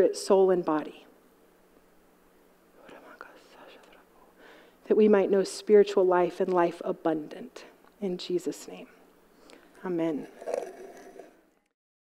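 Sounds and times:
person whispering: 0:02.8 - 0:04.1.

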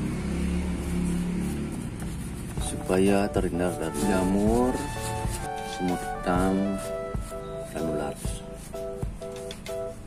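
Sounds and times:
low engine hum: 0:00.0 - 0:07.7.

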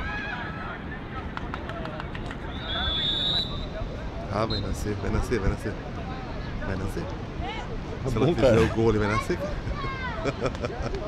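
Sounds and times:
background chatter of voices: 0:00.0 - 0:11.0
whistle blown: 0:02.5 - 0:03.8.

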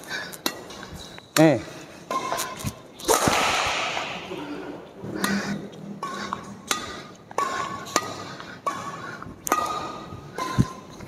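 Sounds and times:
racket hitting shuttlecock: 0:02.1 - 0:04.6, 0:06.0 - 0:08.9, 0:09.5 - 0:10.8.

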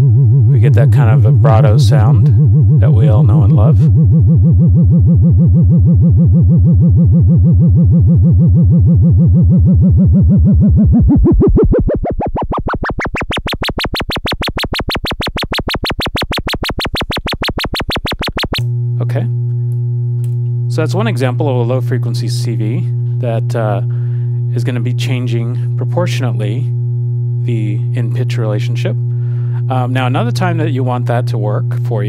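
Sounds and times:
synthesizer sine tone with vibrato: 0:00.0 - 0:19.2.

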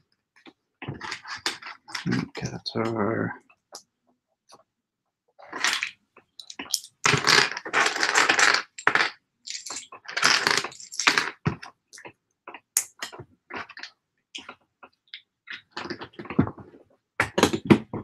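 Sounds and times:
plastic bricks clicking and rattling: 0:05.5 - 0:11.6.

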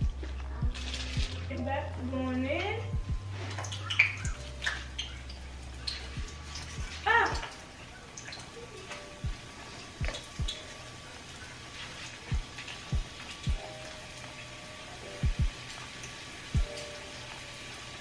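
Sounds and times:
light background music: 0:00.0 - 0:18.0
oil bubbling and sizzling: 0:00.0 - 0:18.0.

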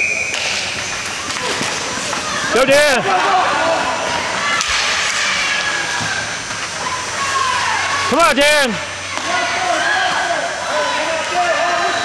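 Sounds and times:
spectators calling and talking: 0:00.0 - 0:12.0.

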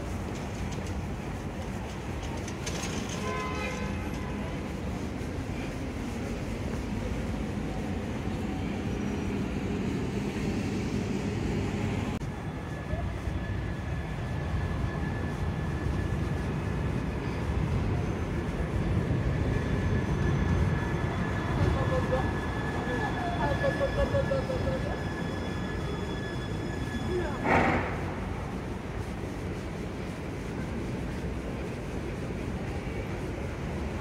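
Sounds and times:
traffic rumble: 0:00.0 - 0:34.0
tram electric drive whine: 0:00.0 - 0:34.0.

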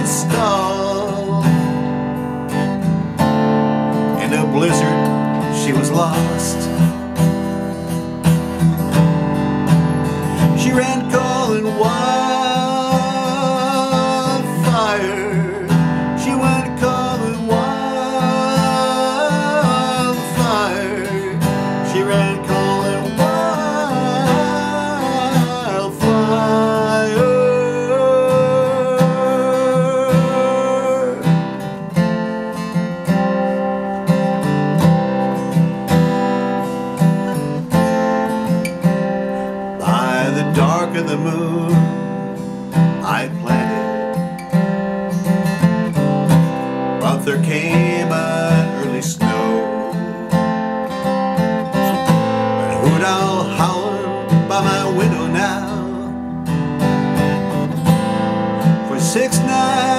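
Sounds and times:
man singing: 0:00.0 - 0:02.9, 0:03.9 - 0:07.3, 0:10.0 - 0:35.6, 0:37.7 - 0:59.9
acoustic guitar strumming: 0:00.0 - 0:59.9.

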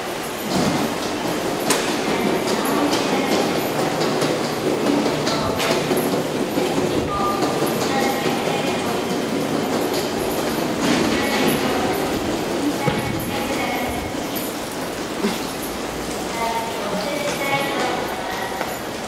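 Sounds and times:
echoing din of underground passage: 0:00.0 - 0:19.0
footsteps on tiled floor: 0:00.0 - 0:19.0.

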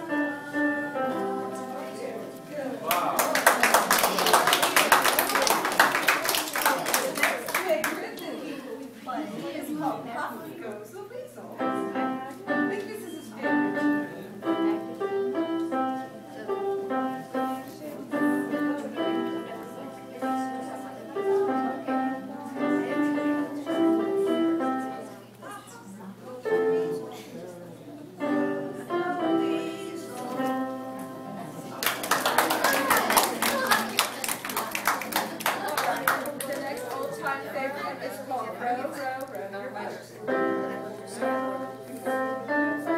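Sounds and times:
electronic keyboard melody: 0:00.0 - 0:02.4
voices: 0:00.0 - 0:42.9
small audience clapping: 0:02.8 - 0:08.3, 0:31.7 - 0:37.4.

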